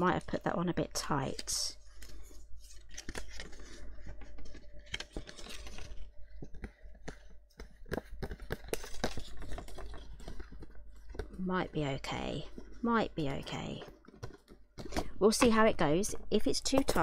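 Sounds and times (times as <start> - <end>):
cardstock clicks and rustles: 1.0 - 11.4, 12.0 - 15.7.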